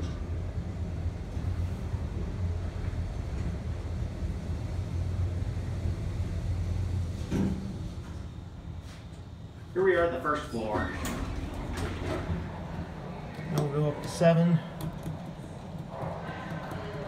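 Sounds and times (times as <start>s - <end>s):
elevator low rumble: 0.0s - 17.0s.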